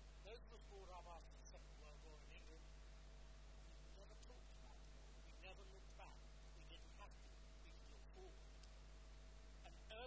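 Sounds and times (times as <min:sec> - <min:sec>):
faint electrical hum: 0:00.0 - 0:10.0
man speaking: 0:00.2 - 0:02.6, 0:03.9 - 0:08.5, 0:09.6 - 0:10.0.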